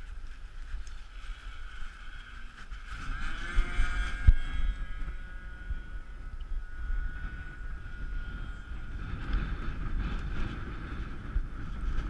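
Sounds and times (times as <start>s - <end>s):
model aircraft motor whining: 0.0s - 12.0s
wind buffeting microphone: 0.0s - 12.0s.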